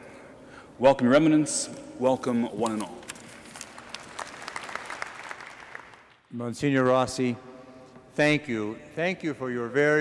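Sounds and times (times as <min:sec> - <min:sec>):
congregation applauding: 0:03.0 - 0:06.3.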